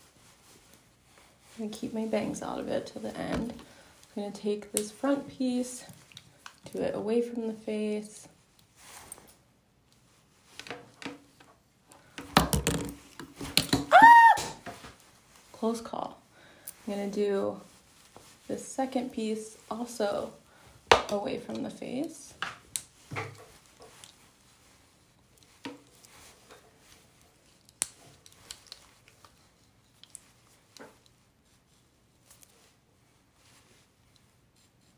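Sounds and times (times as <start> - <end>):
soft hair rustles and clicks: 0.0 - 12.1, 14.6 - 34.9.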